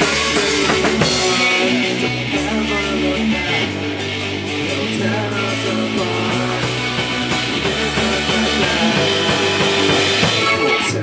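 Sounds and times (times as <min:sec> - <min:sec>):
drum kit with cymbals: 0:00.0 - 0:11.0
electric guitars: 0:00.0 - 0:11.0.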